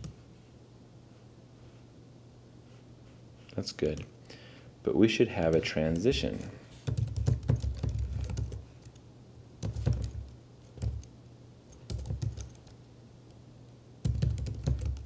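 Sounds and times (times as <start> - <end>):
computer keyboard typing: 5.4 - 9.0, 9.6 - 11.1, 11.7 - 12.8, 14.0 - 15.0.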